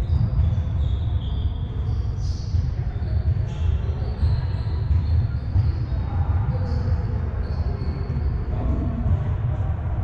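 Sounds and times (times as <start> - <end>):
distant voices of players: 0.0 - 10.0.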